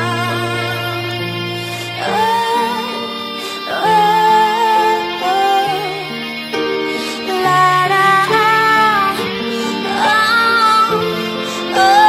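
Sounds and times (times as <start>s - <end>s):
piano accompaniment: 0.0s - 12.0s
woman singing slow song: 0.0s - 12.0s.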